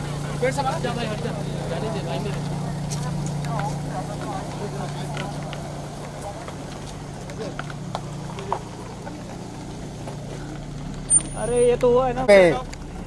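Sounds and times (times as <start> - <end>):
car engine humming: 0.0 - 13.0
crowd of voices: 0.0 - 13.0.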